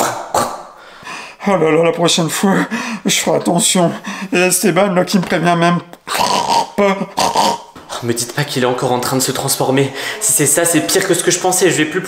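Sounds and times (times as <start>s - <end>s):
man grunting like a pig: 0.0s - 0.7s, 6.1s - 7.7s.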